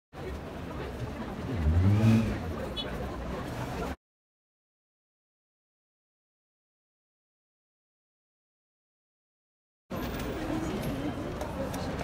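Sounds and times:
street traffic rumble: 0:00.2 - 0:04.0, 0:09.9 - 0:12.0
vehicle engine hum: 0:00.2 - 0:04.0.

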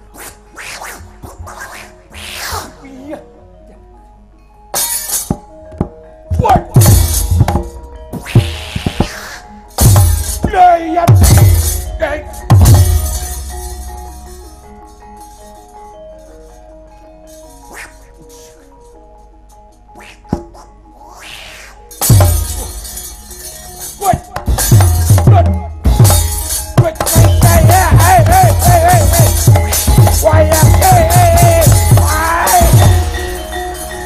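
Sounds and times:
gamelan tones: 0:01.8 - 0:34.0
rushing swish: 0:20.0 - 0:21.8.

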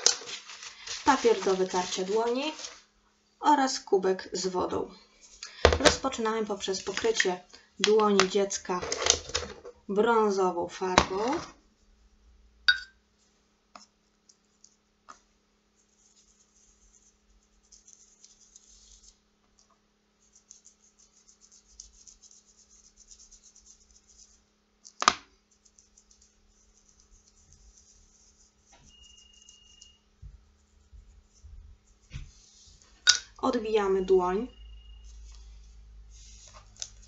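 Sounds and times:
paintbrush brushing on skin: 0:00.0 - 0:02.8, 0:15.8 - 0:19.2, 0:20.2 - 0:24.6, 0:25.4 - 0:33.0, 0:34.4 - 0:37.0.

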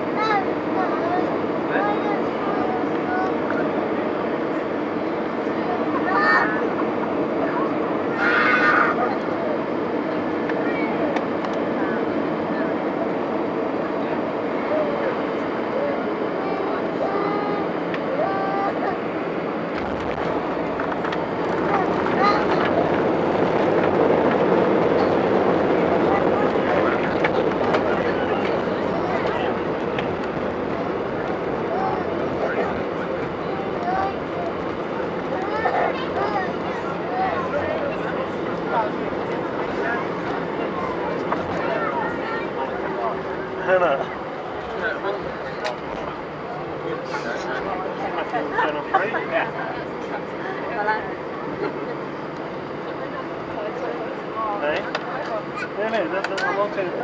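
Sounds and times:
airliner cabin engine noise: 0:00.0 - 0:57.0
wheels rumbling on runway: 0:00.0 - 0:57.0
engines roaring in reverse thrust: 0:08.9 - 0:56.0.

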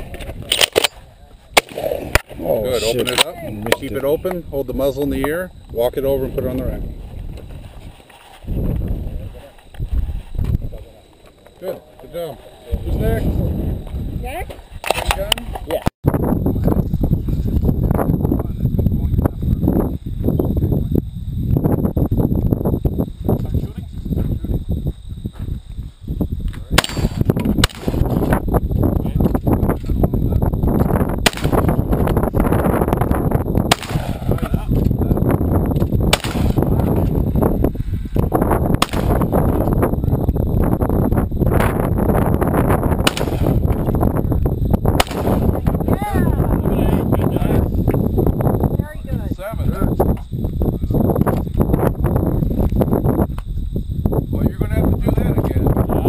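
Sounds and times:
wind rumble on microphone: 0:00.0 - 0:56.0
shotgun shots: 0:01.6 - 0:02.3, 0:26.8 - 0:28.3, 0:31.2 - 0:31.8, 0:33.7 - 0:34.5, 0:36.1 - 0:37.1, 0:38.8 - 0:39.4, 0:43.0 - 0:43.7, 0:45.0 - 0:45.7.

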